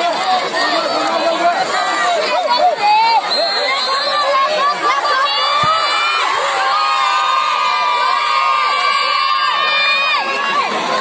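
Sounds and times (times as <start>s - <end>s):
crowd shouting and cheering: 0.0s - 11.0s.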